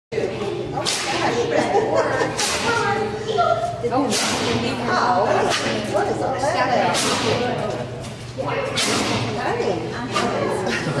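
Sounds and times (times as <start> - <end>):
indistinct voices in hall: 0.1 - 11.0.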